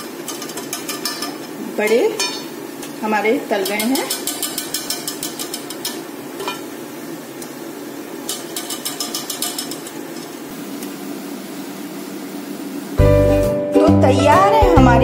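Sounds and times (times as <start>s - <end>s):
oil sizzling: 0.0s - 15.0s
skimmer clicking against pan: 3.6s - 6.7s, 8.3s - 10.0s.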